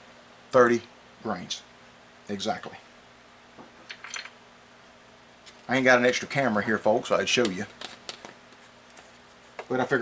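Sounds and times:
small components clicking and clinking: 3.9 - 4.4.

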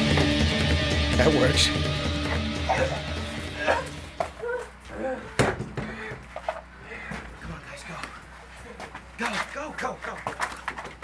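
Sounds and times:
background music: 0.0 - 4.4.

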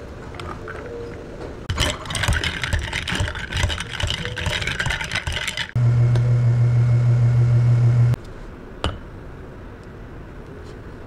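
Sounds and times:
low machine hum: 5.8 - 8.2.

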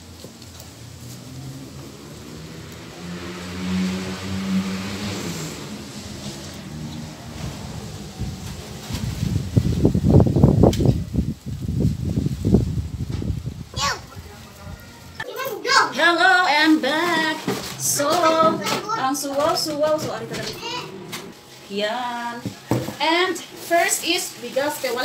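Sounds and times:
vehicle engine running: 0.0 - 13.4.

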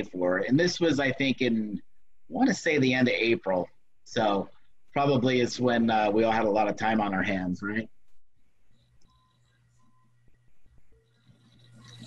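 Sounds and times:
steady low hum: 0.0 - 12.0
soft clicks: 8.0 - 12.0.

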